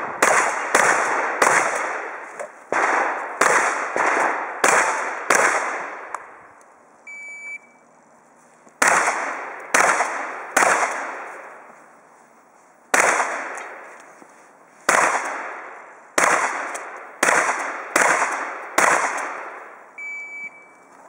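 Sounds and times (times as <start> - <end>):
shotgun shots echoing: 0.0 - 6.3, 8.8 - 11.6, 12.9 - 13.9, 14.9 - 19.8
short high electronic beep: 7.1 - 7.8, 20.0 - 20.8.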